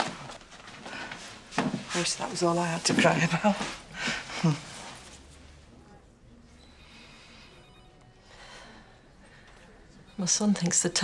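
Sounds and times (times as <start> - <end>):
high electronic ringing tone: 6.5 - 8.8, 9.9 - 11.0.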